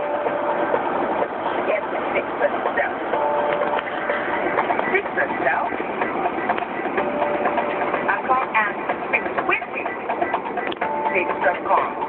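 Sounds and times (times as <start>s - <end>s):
car engine and road noise: 0.0s - 12.0s
indistinct voices: 0.0s - 12.0s.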